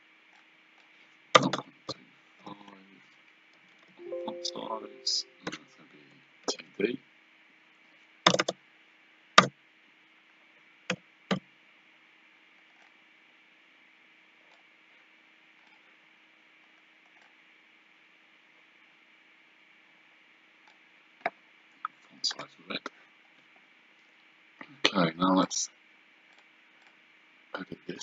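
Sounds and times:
faint hum and hiss: 0:00.0 - 0:28.0
keyboard and mouse clicks: 0:08.3 - 0:08.6.

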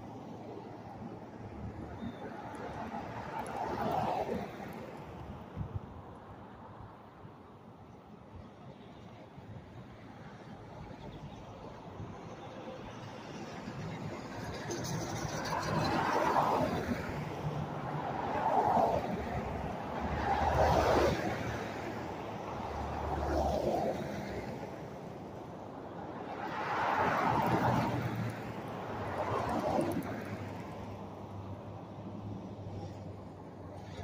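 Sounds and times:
cars driving past on highway: 0:00.0 - 0:34.0.

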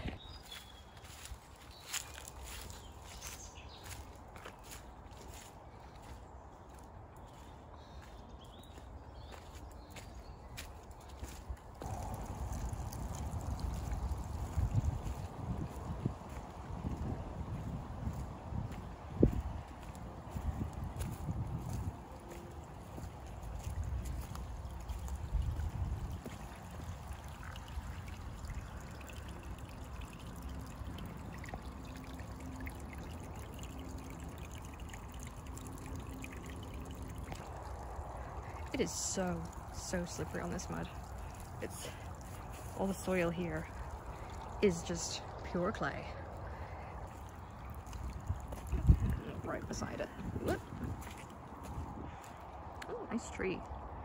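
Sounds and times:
footsteps on a muddy path: 0:00.0 - 0:54.0
stream trickling: 0:00.0 - 0:54.0
low rumble on microphone: 0:11.2 - 0:52.8.

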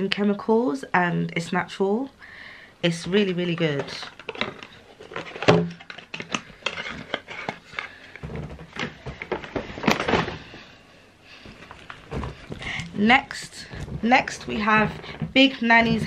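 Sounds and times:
objects knocking and clicking: 0:03.6 - 0:10.4, 0:11.5 - 0:13.0, 0:13.6 - 0:16.0
rustling: 0:03.8 - 0:16.0.

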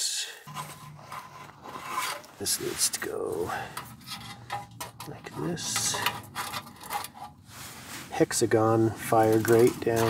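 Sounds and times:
sheet-metal panels clicking and scraping: 0:00.5 - 0:02.4, 0:03.7 - 0:07.4, 0:09.1 - 0:10.0.

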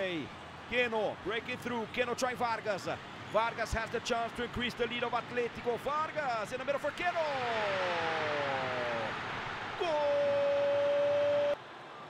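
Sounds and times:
stadium crowd cheering: 0:00.0 - 0:12.0.

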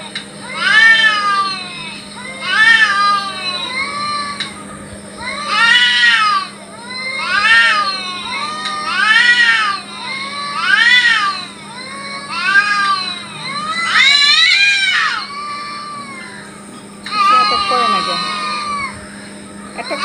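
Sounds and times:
cats yowling: 0:00.0 - 0:20.0.

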